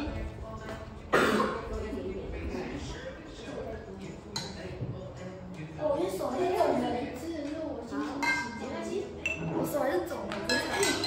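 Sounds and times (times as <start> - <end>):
children chattering: 5.5 - 11.0
glassware and dishes clinking: 8.1 - 9.6, 10.3 - 11.0.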